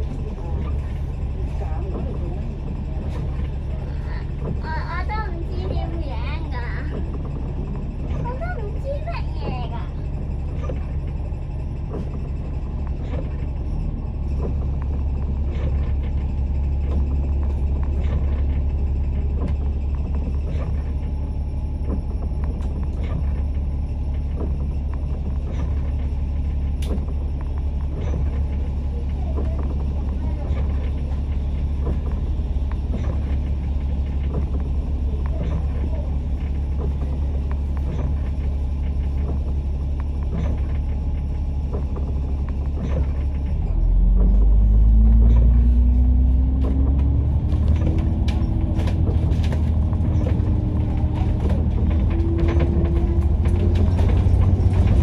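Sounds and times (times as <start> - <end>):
bus engine idling: 0.0 - 55.0
bus engine whine accelerating: 0.0 - 55.0.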